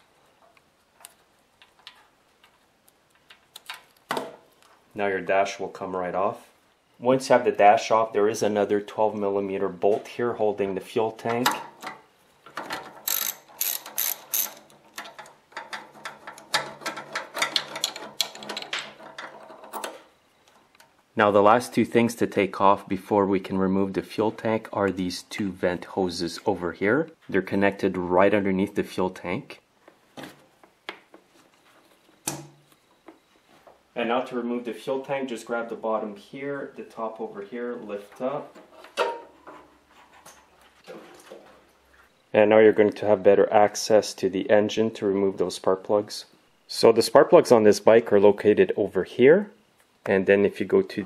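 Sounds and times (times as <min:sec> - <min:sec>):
socket ratchet clicking: 0:13.0 - 0:15.2
faint rubbing and handling noises: 0:29.9 - 0:33.8, 0:36.4 - 0:42.2.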